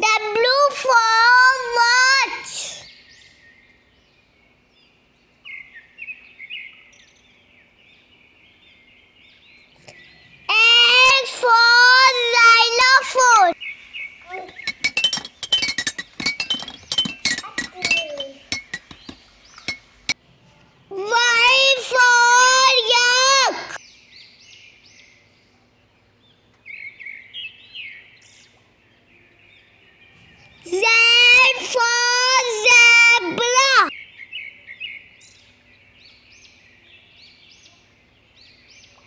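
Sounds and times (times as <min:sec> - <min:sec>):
high-pitched voice calling out: 0:00.0 - 0:02.8, 0:10.5 - 0:13.6, 0:20.9 - 0:23.8, 0:30.7 - 0:33.9
faint birds chirping: 0:00.0 - 0:39.0.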